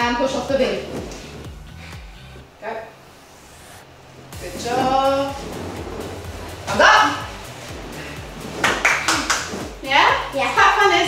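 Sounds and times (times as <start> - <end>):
background music: 0.0 - 11.0
hand claps: 8.6 - 9.7.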